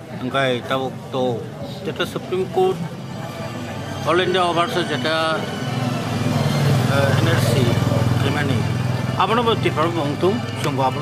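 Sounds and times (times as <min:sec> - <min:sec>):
vehicle engine running: 0:02.4 - 0:11.0.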